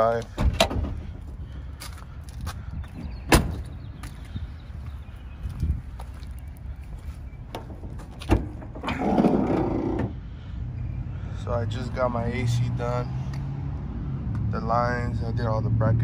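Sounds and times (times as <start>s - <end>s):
truck door shutting: 3.2s - 3.7s, 7.6s - 10.2s.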